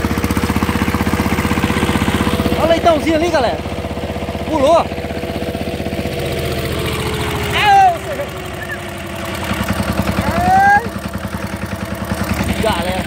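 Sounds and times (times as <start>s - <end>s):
diesel engine pulsing: 0.0s - 13.0s
short high cries: 7.5s - 9.0s, 10.2s - 11.0s.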